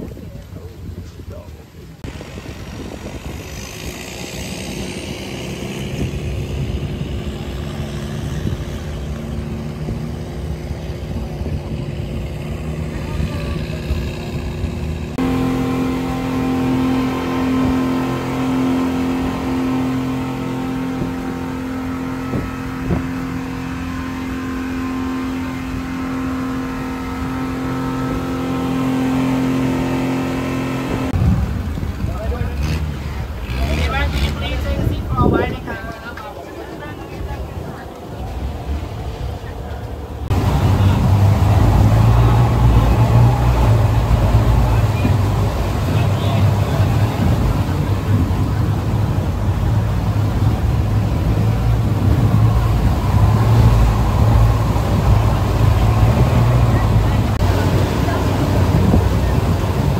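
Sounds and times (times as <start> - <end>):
engine running steadily: 0.0 - 59.9
speedboat engines at speed: 0.0 - 59.9
water rushing past hull: 0.0 - 59.9.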